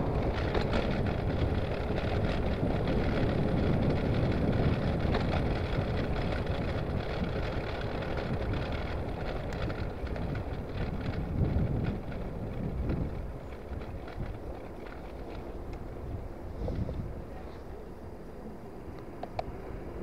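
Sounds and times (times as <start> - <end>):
wind rushing over microphone: 0.0 - 17.4
tyres running on tarmac: 0.0 - 20.0
faint bicycle clicks: 0.1 - 16.0, 18.9 - 19.6.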